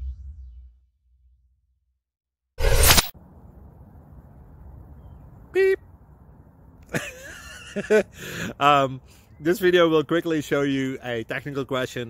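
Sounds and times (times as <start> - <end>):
swoosh sound effect: 2.6 - 3.2
low outdoor rumble: 3.2 - 7.0.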